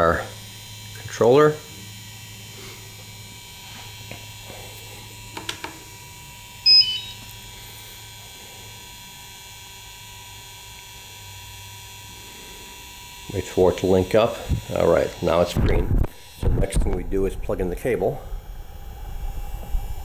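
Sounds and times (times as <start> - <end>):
low steady hum: 0.0 - 20.0
electronic beep: 6.6 - 7.2.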